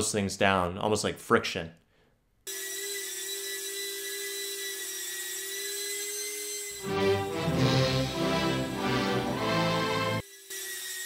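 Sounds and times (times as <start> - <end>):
music: 6.8 - 10.2.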